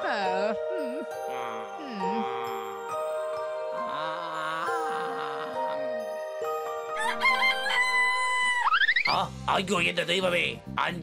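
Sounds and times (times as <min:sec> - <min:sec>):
cartoon rooster crowing: 0:07.0 - 0:09.1.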